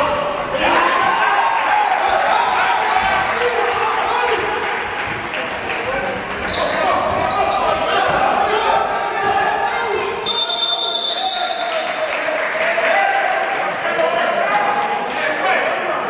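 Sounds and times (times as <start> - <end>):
players and spectators talking: 0.0 - 16.0.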